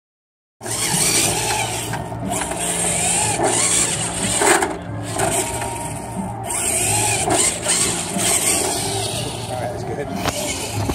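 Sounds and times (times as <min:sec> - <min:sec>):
toy truck motor and gears whining: 0:00.6 - 0:10.9.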